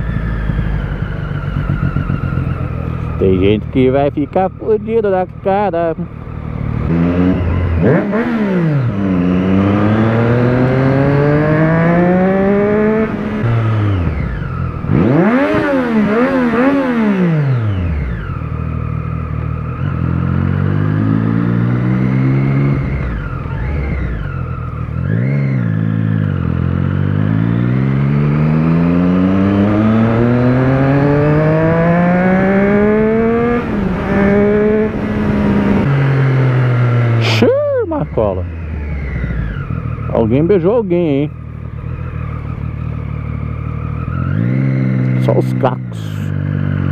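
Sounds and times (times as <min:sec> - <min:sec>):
motorcycle engine revving: 0:00.0 - 0:46.9.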